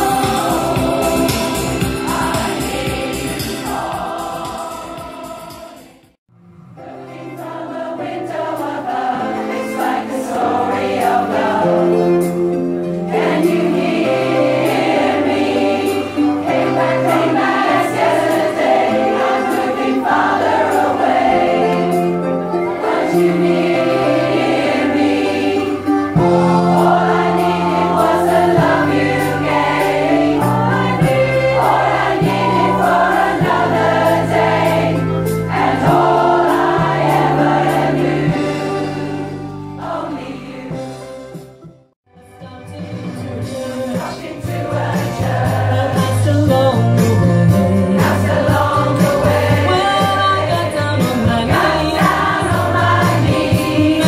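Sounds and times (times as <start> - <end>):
choir singing in parts: 0.0 - 6.2, 6.8 - 41.1, 43.5 - 54.0.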